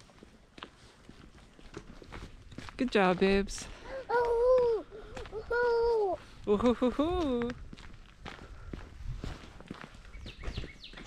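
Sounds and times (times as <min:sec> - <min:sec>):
footsteps crunching outdoors: 0:00.0 - 0:11.0.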